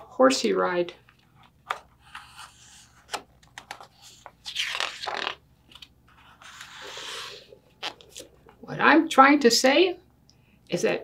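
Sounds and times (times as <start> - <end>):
book pages turning and rustling: 1.2 - 8.6.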